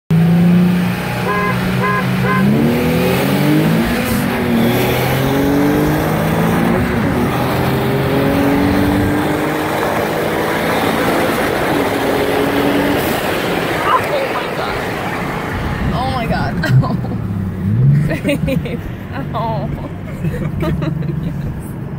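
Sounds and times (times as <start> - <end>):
car engines at full throttle: 0.1 - 21.9
short beeps: 1.3 - 2.5.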